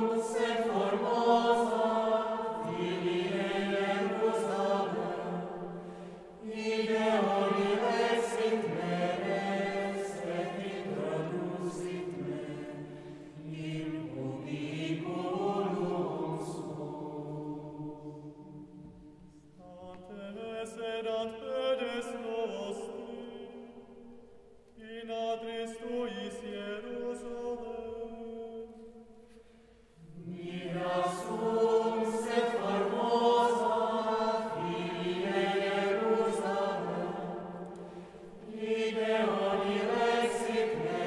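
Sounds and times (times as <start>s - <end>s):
mixed choir singing unaccompanied: 0.0s - 24.1s, 30.0s - 41.0s.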